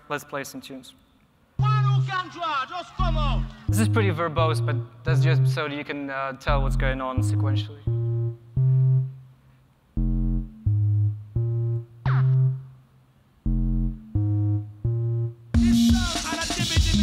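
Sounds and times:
drum and bass beat: 1.6s - 5.4s, 10.0s - 12.7s, 13.5s - 17.0s
short low synth notes: 3.0s - 5.6s, 6.5s - 9.3s, 9.9s - 16.0s.

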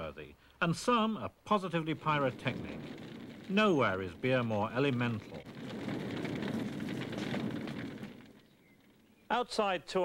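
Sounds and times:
wood fire crackling: 0.5s - 9.6s.

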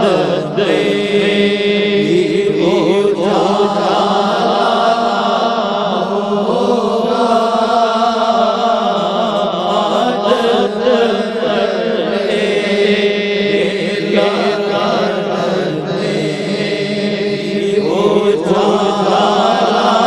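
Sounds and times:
man singing unaccompanied: 0.0s - 20.0s.

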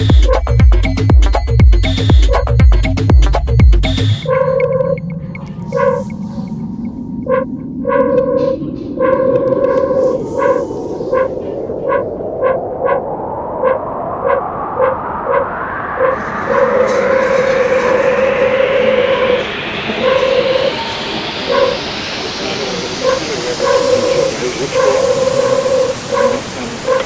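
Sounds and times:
rising noise sweep: 0.0s - 27.0s
synth stabs: 0.0s - 27.0s.

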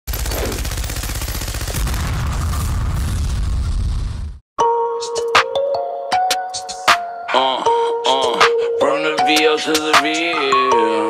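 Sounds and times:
machine gun firing: 0.1s - 2.6s.

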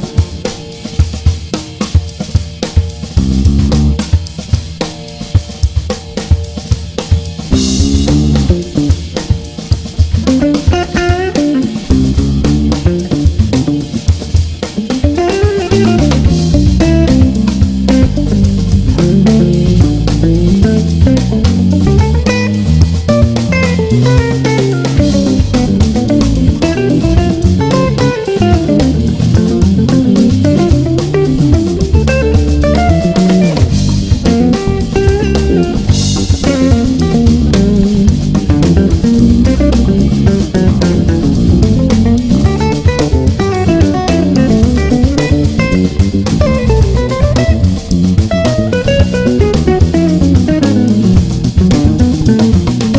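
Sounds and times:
bass and drums backing track: 0.0s - 52.9s
electric guitar melodic lines: 7.4s - 52.9s.

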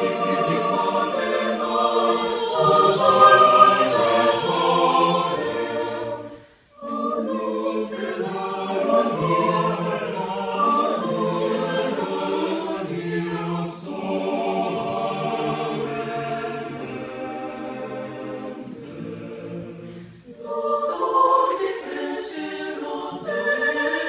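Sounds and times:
choir singing a cappella: 0.0s - 24.0s.

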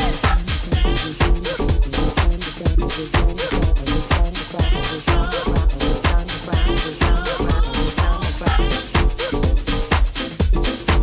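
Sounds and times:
electronic dance music: 0.0s - 11.0s
steady kick drum: 0.0s - 11.0s.

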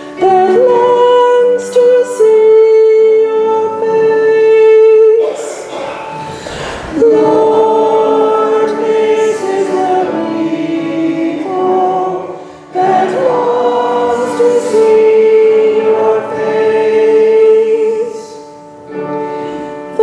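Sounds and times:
congregation singing: 0.0s - 20.0s.

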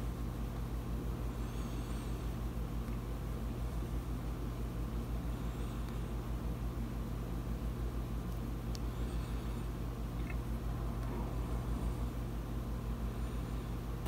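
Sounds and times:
low room hum: 0.0s - 14.0s.

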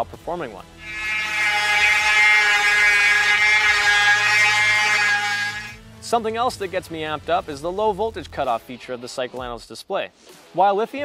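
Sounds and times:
electric motor whining: 0.8s - 5.8s.

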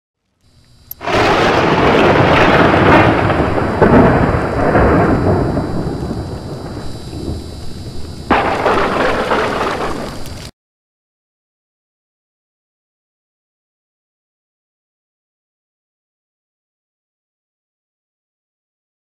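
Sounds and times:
rumbling thunder-like crash: 1.0s - 10.4s.

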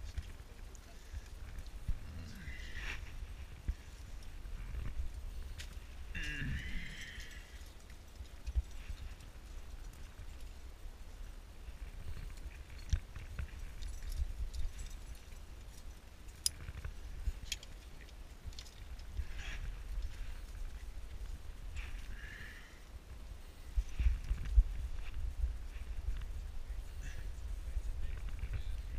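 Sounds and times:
wind rumble on microphone: 0.0s - 28.9s
metal climbing gear clicking: 12.2s - 20.6s.

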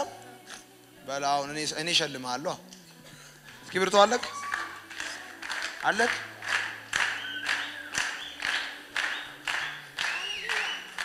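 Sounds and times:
crowd clapping in rhythm: 3.4s - 11.0s.

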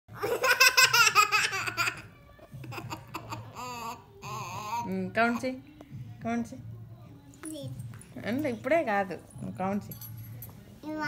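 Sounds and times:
toddler girl laughing: 0.1s - 3.9s.

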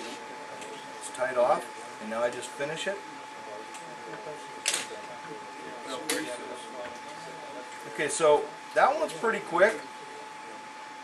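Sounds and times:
faint low murmuring: 0.0s - 11.0s
high-pitched electrical hum: 0.0s - 11.0s.

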